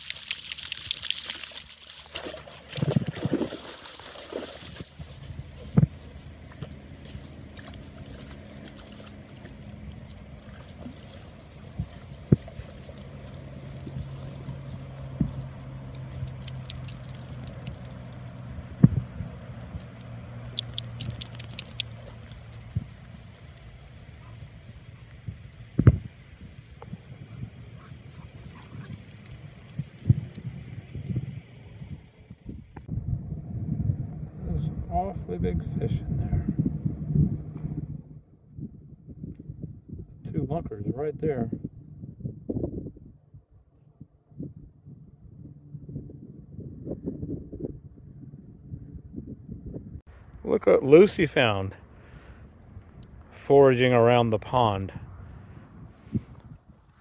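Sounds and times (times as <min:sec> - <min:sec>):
dogs wading in water: 0:00.0 - 0:24.7
low engine-like hum: 0:03.6 - 0:40.3, 0:41.6 - 0:50.7.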